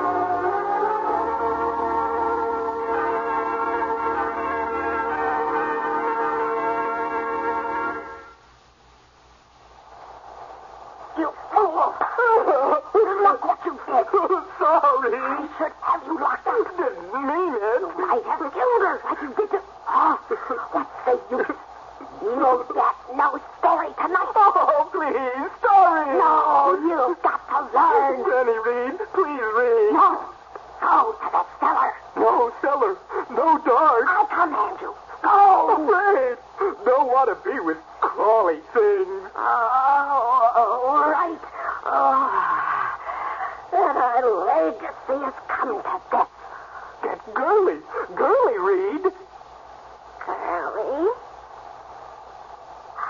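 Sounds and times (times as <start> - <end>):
radio drama voices: 9.2 - 53.0.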